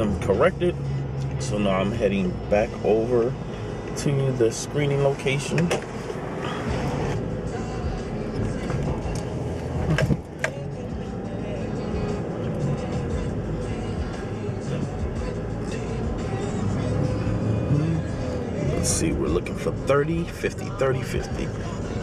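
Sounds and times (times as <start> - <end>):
background music: 0.0 - 22.0
car road and engine noise: 0.0 - 22.0.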